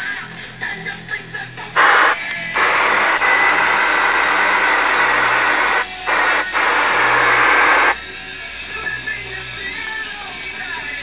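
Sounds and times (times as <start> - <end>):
radio static hiss: 1.8 - 8.0.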